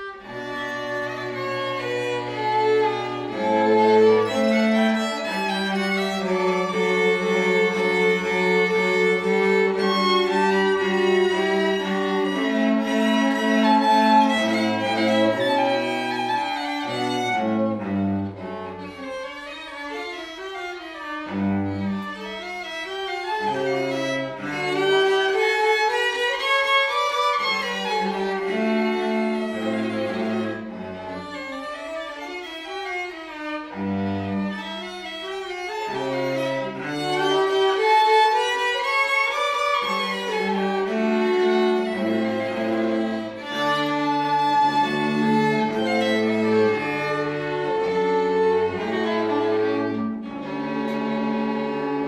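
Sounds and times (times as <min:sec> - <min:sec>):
bowed string melody: 0:00.0 - 0:52.0
cello low notes: 0:00.0 - 0:52.0.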